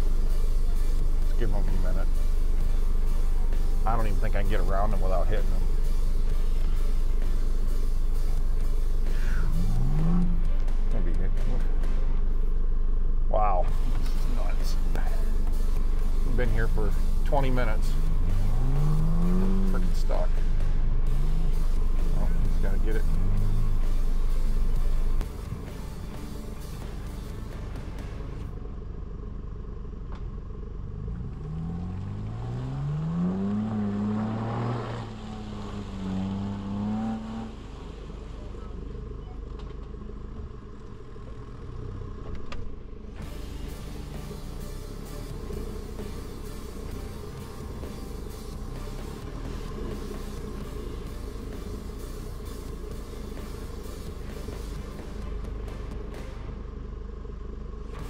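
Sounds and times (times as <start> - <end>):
off-road vehicle engine revving: 0.0 - 28.6, 29.9 - 58.0.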